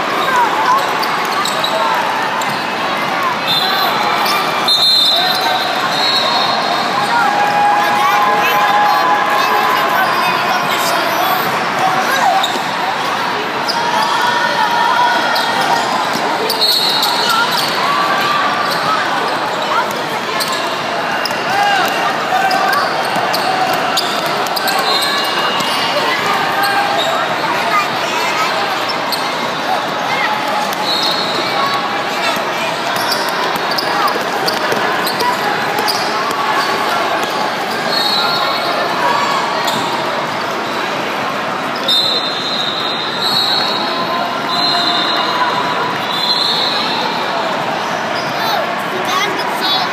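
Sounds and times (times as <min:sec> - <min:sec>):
hubbub of voices in a hall: 0:00.0 - 0:49.9.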